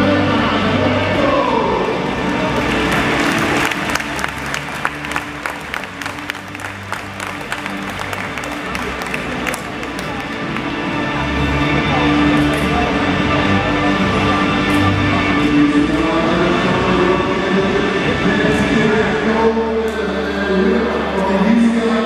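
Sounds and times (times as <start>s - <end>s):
music playing: 0.0s - 22.0s
crowd applauding: 2.4s - 11.0s.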